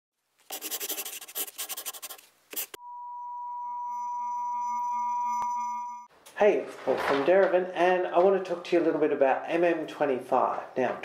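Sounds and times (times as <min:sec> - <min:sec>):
steady electronic beep tone: 0:02.8 - 0:06.1.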